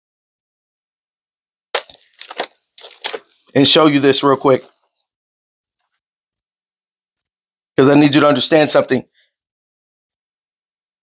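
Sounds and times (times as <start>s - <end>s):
thin paper pages flipping: 1.8s - 3.4s.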